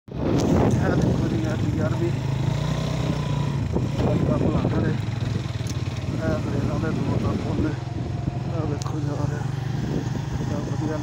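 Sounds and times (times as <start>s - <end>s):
motorcycle engine running: 0.1s - 11.0s.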